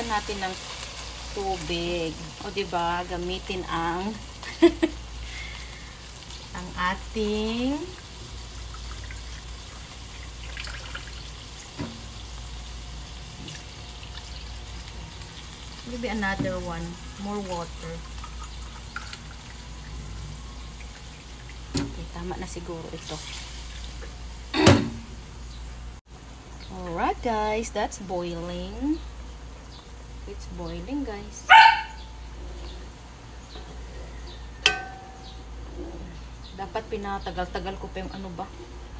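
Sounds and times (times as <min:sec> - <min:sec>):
fish sizzling in a wok: 0:00.0 - 0:25.5
water splashing into wok: 0:07.9 - 0:12.2.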